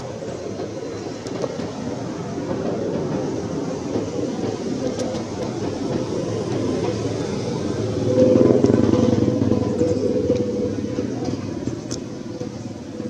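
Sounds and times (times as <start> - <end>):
vehicle engine passing: 6.7 - 13.0.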